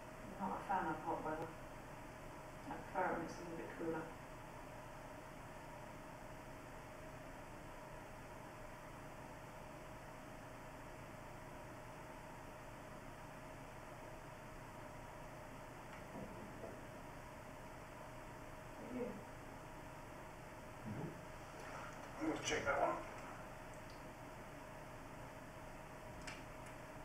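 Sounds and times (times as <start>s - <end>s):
thin steady hum: 0.0s - 27.0s.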